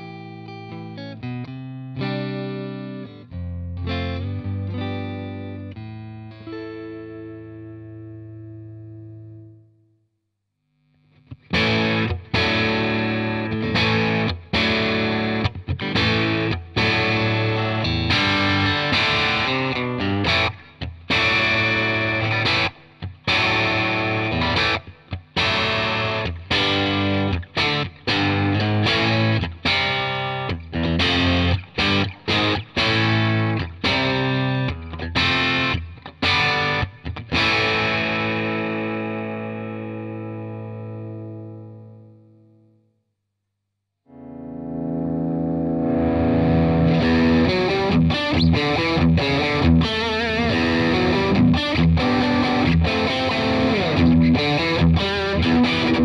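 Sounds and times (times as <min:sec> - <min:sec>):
distorted electric guitar riff: 0:10.8 - 0:42.6, 0:44.1 - 0:56.0
clean electric guitar notes: 0:44.1 - 0:56.0.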